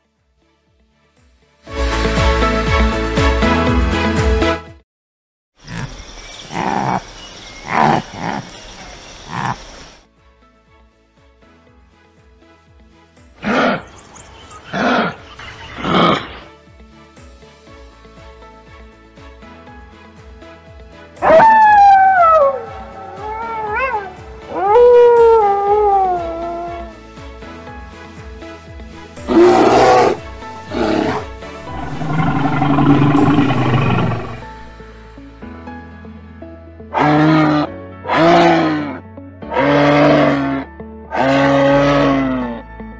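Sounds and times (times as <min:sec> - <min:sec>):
background music: 0:00.0 - 0:04.8, 0:10.1 - 0:42.9
bear growling: 0:05.7 - 0:09.8, 0:13.4 - 0:13.9, 0:14.7 - 0:16.5, 0:21.2 - 0:26.9, 0:29.2 - 0:34.7, 0:36.9 - 0:42.6
kangaroo gruff calls: 0:05.7 - 0:09.8, 0:13.4 - 0:16.5, 0:22.7 - 0:25.2, 0:29.3 - 0:34.5, 0:37.0 - 0:42.6.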